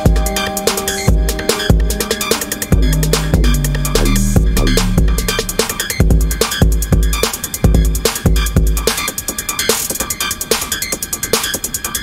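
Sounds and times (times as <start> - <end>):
deep bass line: 0.0 - 8.8
electronic dance music: 0.0 - 9.1
fast ticking hi-hats: 0.0 - 12.0
heavy kick drum: 0.1 - 8.9.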